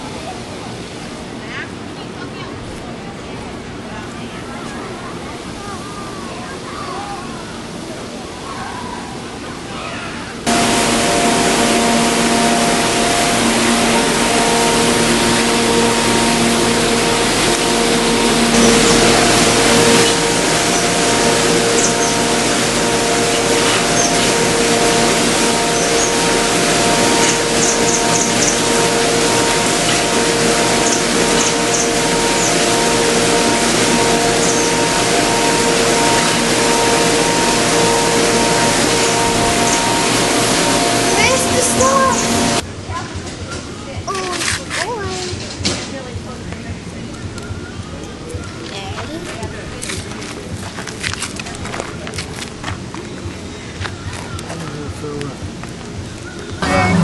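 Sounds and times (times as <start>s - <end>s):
long held notes: 10.4s - 42.7s, 56.6s - 57.0s
loud rushing hiss: 10.5s - 42.6s.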